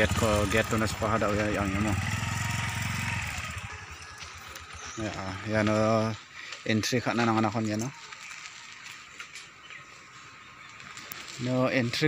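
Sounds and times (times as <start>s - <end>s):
small engine throbbing: 0.0s - 6.1s.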